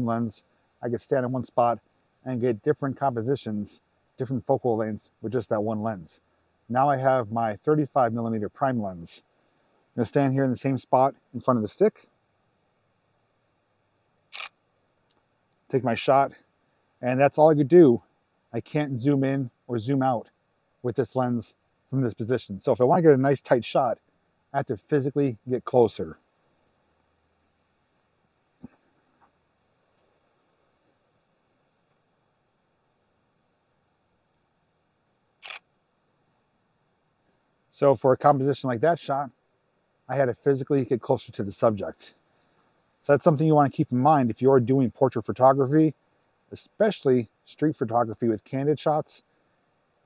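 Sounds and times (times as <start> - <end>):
camera shutter click: 14.3 - 14.5, 35.4 - 35.6.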